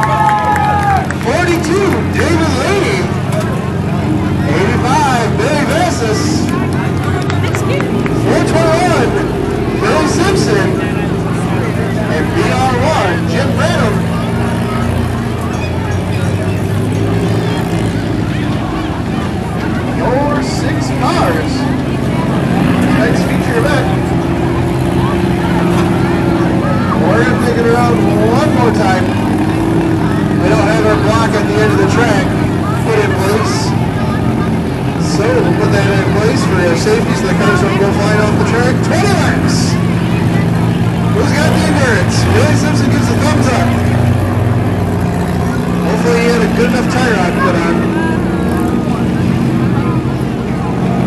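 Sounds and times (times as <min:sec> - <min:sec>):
crowd chatter: 0:00.0 - 0:51.0
race car engines droning: 0:00.0 - 0:51.0.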